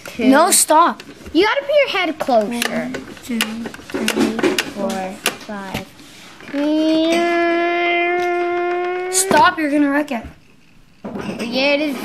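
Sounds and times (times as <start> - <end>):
boy singing a long note: 7.0 - 9.4.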